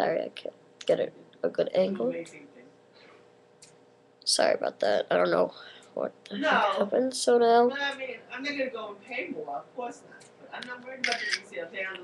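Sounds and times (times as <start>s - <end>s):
camera shutter sound effect: 11.0s - 11.4s.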